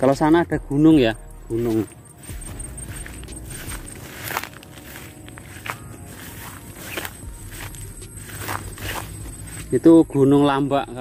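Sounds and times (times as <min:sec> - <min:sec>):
footsteps through tall grass: 0:01.4 - 0:10.7.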